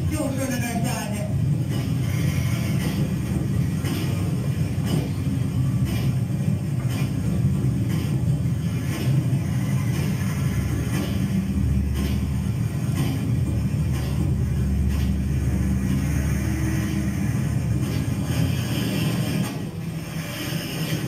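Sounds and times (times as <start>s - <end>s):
minibus engine rumble: 0.0s - 21.0s.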